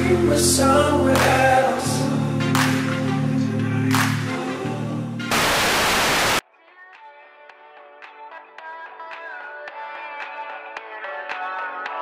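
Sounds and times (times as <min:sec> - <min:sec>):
tv static noise burst: 0:05.3 - 0:06.4.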